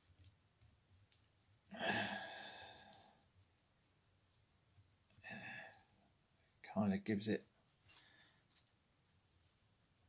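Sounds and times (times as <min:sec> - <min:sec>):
man sighing: 0:01.7 - 0:03.1, 0:05.2 - 0:05.8.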